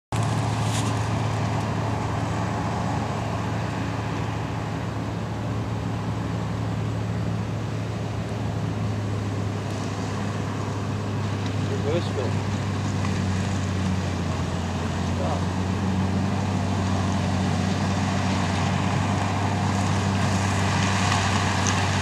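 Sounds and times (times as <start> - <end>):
diesel engines droning: 0.1 - 22.0.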